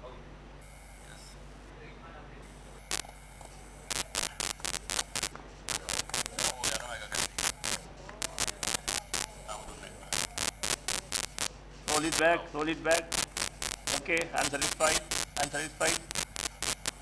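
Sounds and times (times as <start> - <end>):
electrical mains hum: 0.0 - 17.0
sharp crackling clicks: 2.9 - 3.2, 3.9 - 9.3, 10.1 - 12.2, 12.9 - 17.0.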